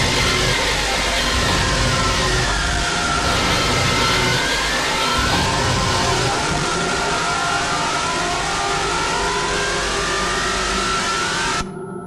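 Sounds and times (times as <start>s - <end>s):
harsh electronic noise music: 0.0s - 11.7s
gliding tone: 0.0s - 11.9s.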